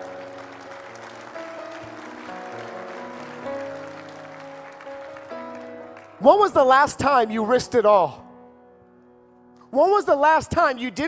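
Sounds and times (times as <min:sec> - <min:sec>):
congregation applauding: 0:00.0 - 0:06.8
soft keyboard chords: 0:00.0 - 0:11.0.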